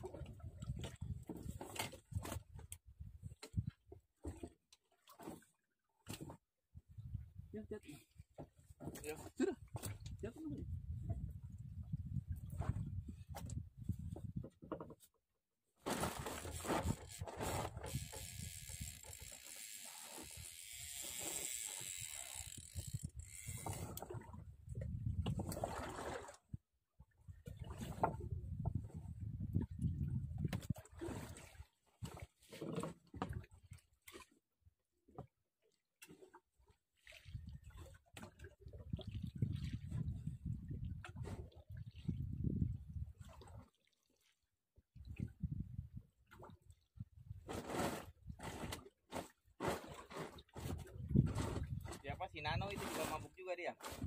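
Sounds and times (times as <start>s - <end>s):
wind rumbling on microphone: 0.0s - 3.8s, 9.8s - 14.6s, 21.5s - 25.9s, 27.1s - 31.3s, 38.6s - 43.4s, 45.0s - 46.2s, 50.6s - 52.8s
water lapping around boat: 0.0s - 54.0s.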